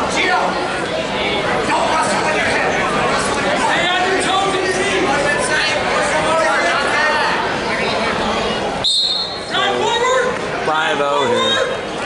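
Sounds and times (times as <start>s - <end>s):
voices in a gym: 0.0s - 12.0s
referee's whistle blast: 8.8s - 9.5s.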